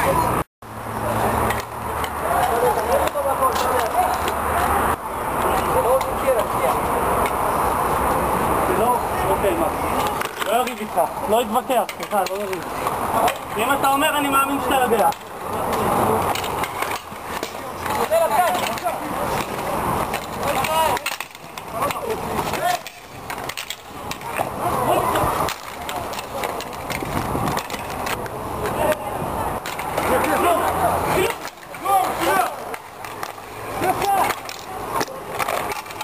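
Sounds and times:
skate wheels rolling and scraping: 0.0 - 36.0
hockey sticks clacking: 1.2 - 7.7, 8.7 - 36.0
players shouting: 8.7 - 36.0.

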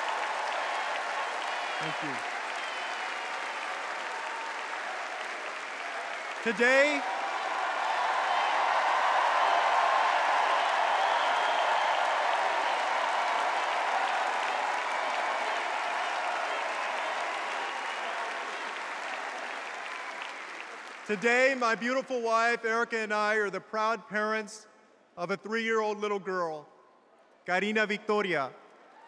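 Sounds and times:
large crowd applauding: 0.0 - 22.5.

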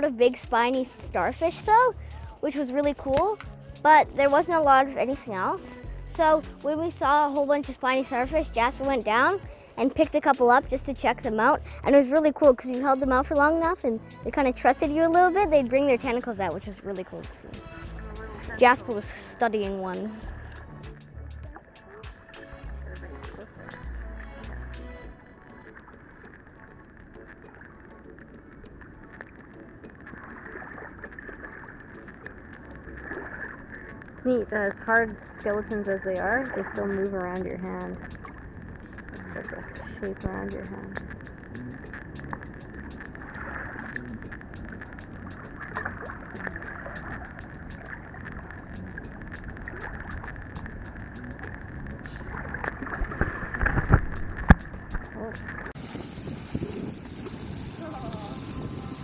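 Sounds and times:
water and air rushing at shoreline: 0.0 - 59.0
small waves lapping: 11.2 - 59.0
wind buffeting microphone: 28.6 - 59.0.

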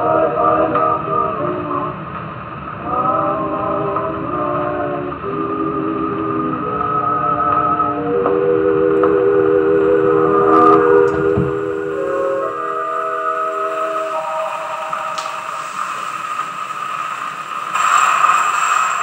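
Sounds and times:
record surface hiss: 0.0 - 19.0
orchestra sustained chords: 2.8 - 17.6.

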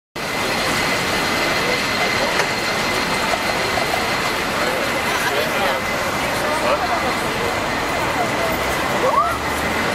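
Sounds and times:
cable car running on rails: 0.2 - 9.9.

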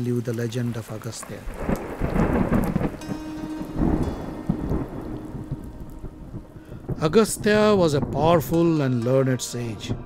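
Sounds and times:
steady rain: 0.0 - 10.0
rumbling thunder: 1.2 - 10.0.

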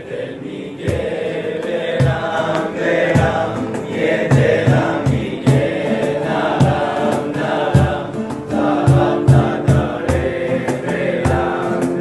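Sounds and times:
mixed choir singing: 0.0 - 12.0
steady beat: 0.8 - 12.0.

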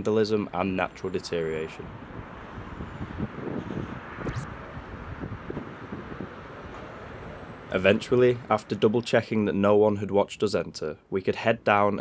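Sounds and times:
road traffic rumble: 0.0 - 11.8
wind gusting over microphone: 1.7 - 9.0.

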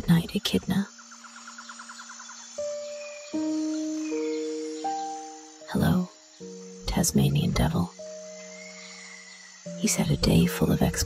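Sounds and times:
soft music of held notes: 1.2 - 11.0.

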